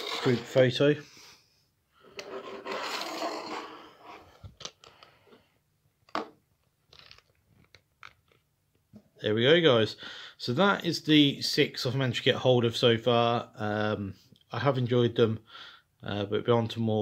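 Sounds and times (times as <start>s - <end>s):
plastic scraping on wooden table: 0.0s - 0.6s, 2.0s - 4.6s.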